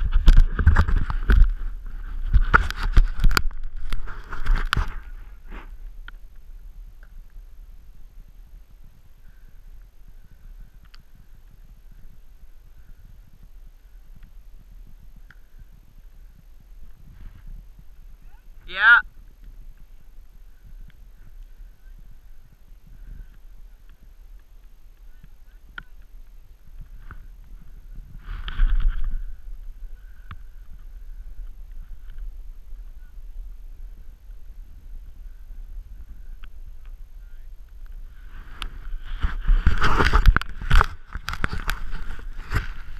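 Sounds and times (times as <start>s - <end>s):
camera handling scraping and knocking: 0.0s - 1.6s, 2.2s - 5.1s, 38.6s - 42.9s
wind rumble on microphone: 0.0s - 42.9s.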